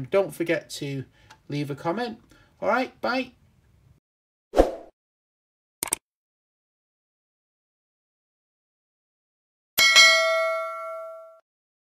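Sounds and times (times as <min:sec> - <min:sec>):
notification bell ding: 0:09.8 - 0:11.4.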